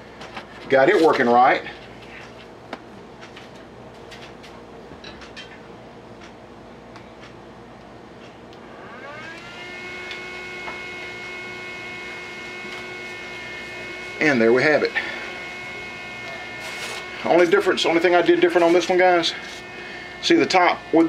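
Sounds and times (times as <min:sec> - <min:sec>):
small electric fan whine: 0:00.0 - 0:21.0.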